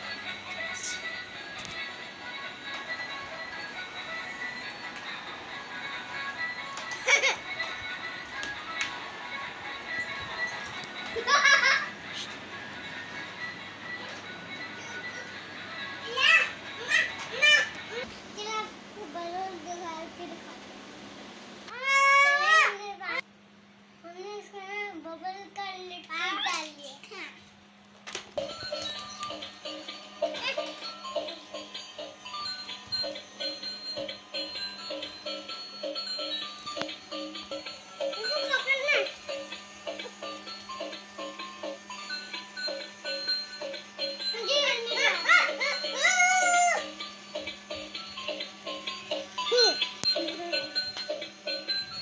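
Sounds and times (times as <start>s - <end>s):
toy playing electronic tune: 0.0s - 18.0s, 28.4s - 52.0s
child's high-pitched vocal call: 21.7s - 22.9s
steady low hum: 27.1s - 52.0s.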